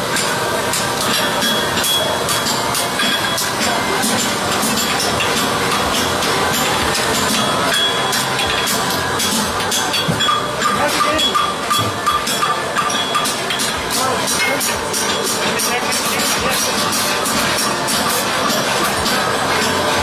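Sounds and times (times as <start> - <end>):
hammer striking metal on anvil: 0.1 - 15.6.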